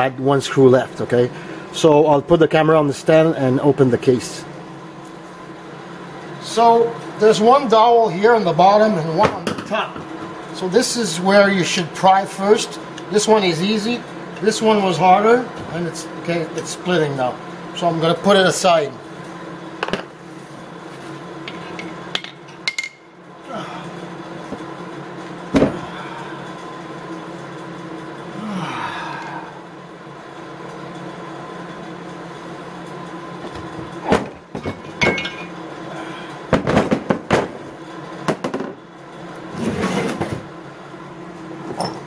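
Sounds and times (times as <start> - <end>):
steady background hum: 0.0 - 42.0.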